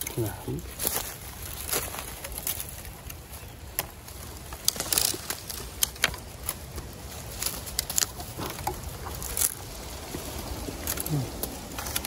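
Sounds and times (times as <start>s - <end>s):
dry leaves and twigs crackling: 0.0s - 12.0s.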